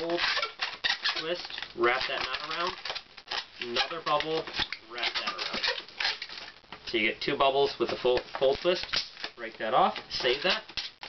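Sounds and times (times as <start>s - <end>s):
balloon squeaking and rubbing: 0.0s - 9.4s, 10.0s - 11.0s.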